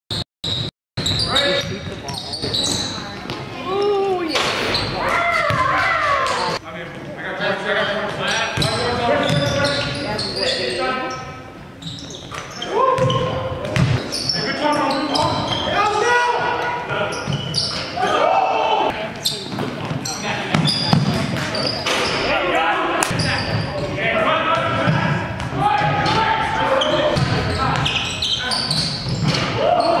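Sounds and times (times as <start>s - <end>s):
basketball bouncing on hardwood: 13.0s - 14.0s
players shouting: 18.0s - 19.0s.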